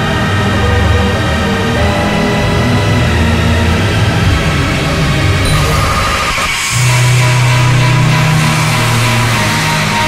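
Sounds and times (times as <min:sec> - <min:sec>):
loud steady bass tone: 0:00.0 - 0:10.0.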